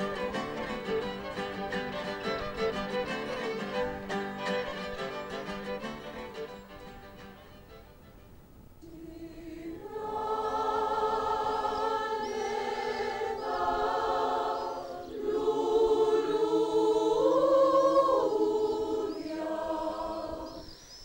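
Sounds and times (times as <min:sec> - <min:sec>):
mixed choir singing held chords: 0:08.8 - 0:20.9.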